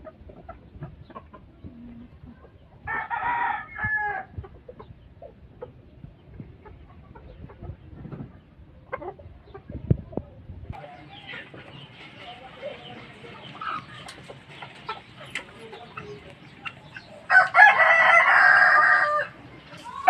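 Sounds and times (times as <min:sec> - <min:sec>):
soft clucks: 0:00.0 - 0:02.8, 0:04.4 - 0:17.3
rooster crowing: 0:02.9 - 0:04.3, 0:17.3 - 0:19.4.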